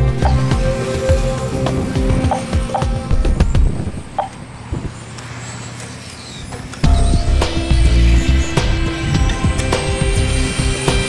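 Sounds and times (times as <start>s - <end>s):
high motor whine: 0.0s - 11.0s.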